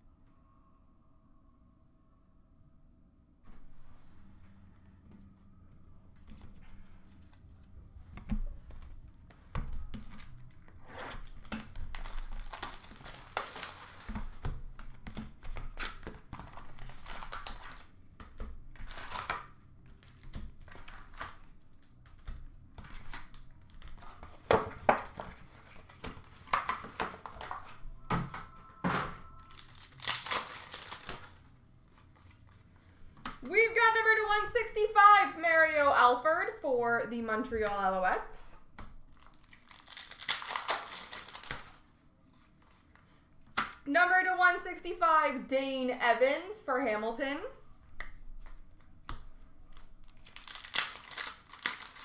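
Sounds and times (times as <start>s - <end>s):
plastic wrapper crinkling and tearing: 10.0s - 18.0s, 18.6s - 27.8s, 29.4s - 31.5s, 39.0s - 41.9s, 49.7s - 52.0s.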